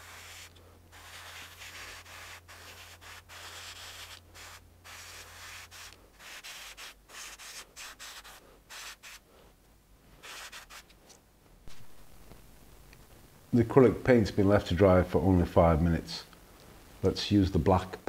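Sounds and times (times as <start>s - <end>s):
airbrush spraying hiss: 0.0s - 9.3s.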